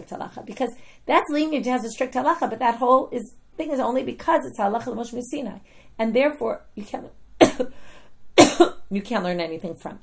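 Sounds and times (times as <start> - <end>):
woman coughing: 7.4 - 7.8, 8.4 - 8.8.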